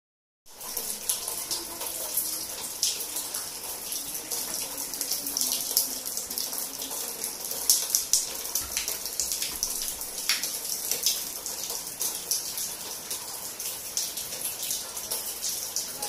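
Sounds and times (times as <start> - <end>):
water dripping into plastic basins: 0.5 - 16.0.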